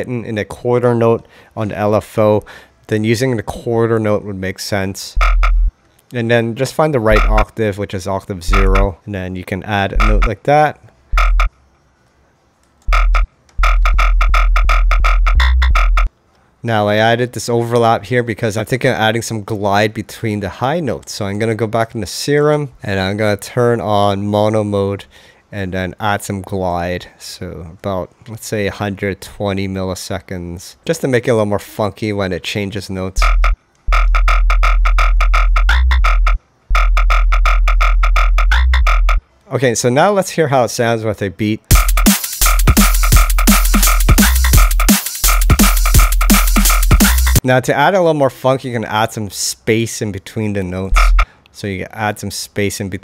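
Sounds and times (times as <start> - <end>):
pulsing synth bass notes: 5.2 - 5.7, 7.1 - 7.5, 8.5 - 8.9, 9.9 - 10.3, 11.1 - 11.5, 12.9 - 16.1, 33.2 - 39.2, 41.7 - 47.4, 50.9 - 51.2.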